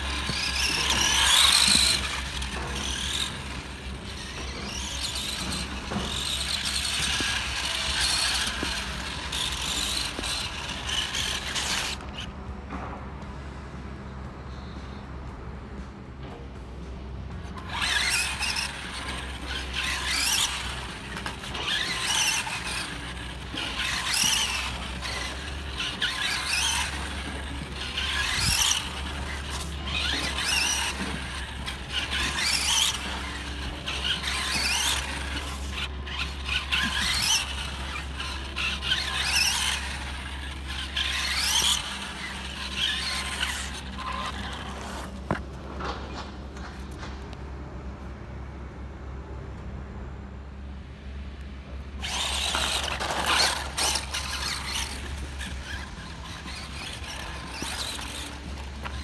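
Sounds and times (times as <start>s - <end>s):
rc car motor whining: 0.0s - 12.3s, 17.4s - 46.9s, 52.0s - 59.0s.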